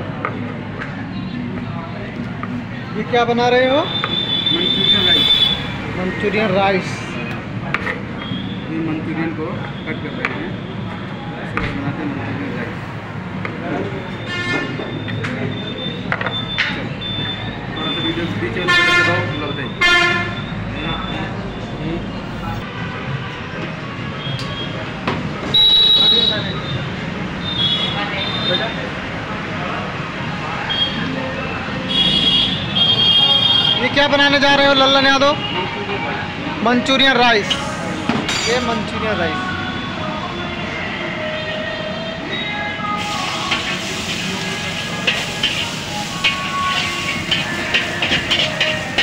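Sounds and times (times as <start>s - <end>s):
background chatter: 0.0s - 49.0s
street traffic: 0.0s - 49.0s
vehicle horn honk: 14.2s - 14.9s, 18.6s - 20.5s, 31.9s - 33.9s
gas burner roaring: 43.0s - 49.0s
stir-fry sizzling: 43.0s - 49.0s
metal spatula clinking on wok: 45.1s - 49.0s.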